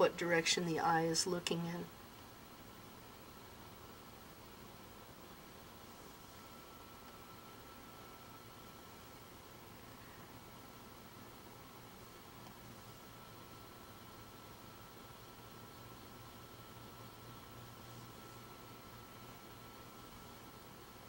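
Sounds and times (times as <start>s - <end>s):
faint low hum: 0.0s - 21.0s
steady hiss: 0.0s - 21.0s
thin high whine: 0.0s - 21.0s.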